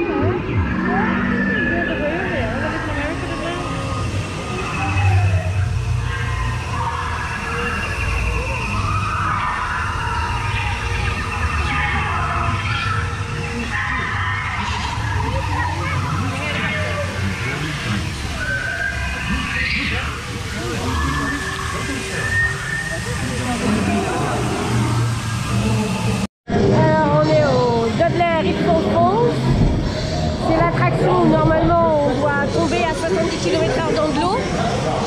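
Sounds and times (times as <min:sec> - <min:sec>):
ride boat rumbling through water: 0:00.0 - 0:35.0
voices: 0:00.0 - 0:35.0.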